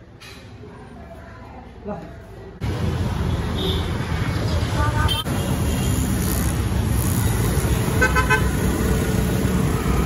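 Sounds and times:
motorcycle engines passing: 0:02.6 - 0:10.0.

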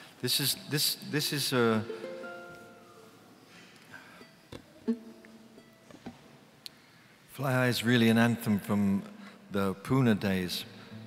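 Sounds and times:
plucked guitar notes: 0:01.8 - 0:03.2, 0:04.6 - 0:06.0.

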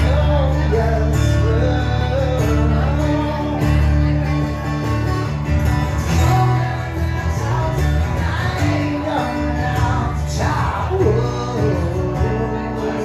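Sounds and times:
acoustic guitar strummed: 0:00.0 - 0:13.0
man singing: 0:00.0 - 0:13.0.

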